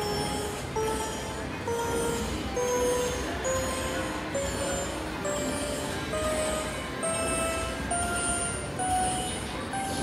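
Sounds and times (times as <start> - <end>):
rising slot machine chimes: 0.0 - 10.0.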